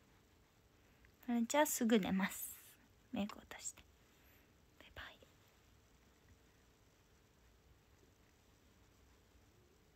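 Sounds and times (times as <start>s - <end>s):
young woman whispering: 1.5s - 3.9s, 4.8s - 5.4s.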